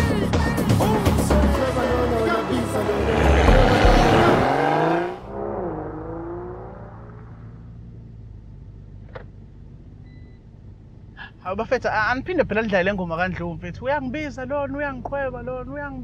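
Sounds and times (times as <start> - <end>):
music with heavy bass beat: 0.0 - 5.1
car engine hum inside cabin: 0.0 - 16.0
rising sweep: 1.2 - 8.0.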